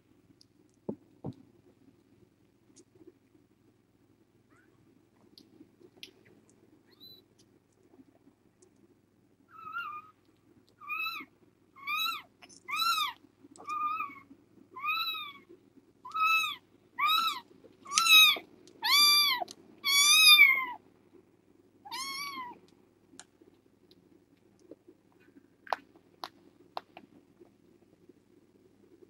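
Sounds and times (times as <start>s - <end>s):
kitten mewing: 16.1s - 20.8s, 21.9s - 22.6s.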